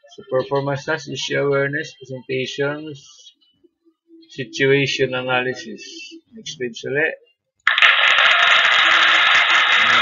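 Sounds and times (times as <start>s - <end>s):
hissing static with crackle: 7.7s - 10.0s.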